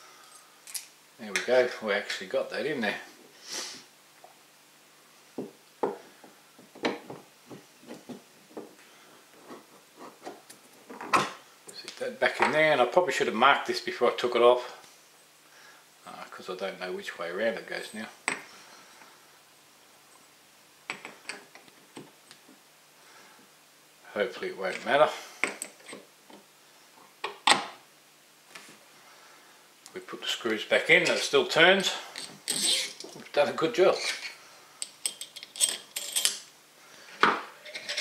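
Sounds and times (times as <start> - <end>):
steel screws clinking: 32.2 - 33.2, 34.0 - 36.5.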